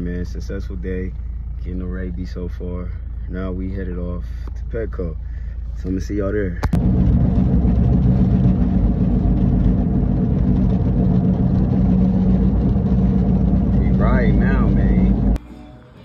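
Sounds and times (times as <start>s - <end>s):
car engine and road drone: 0.0s - 16.0s.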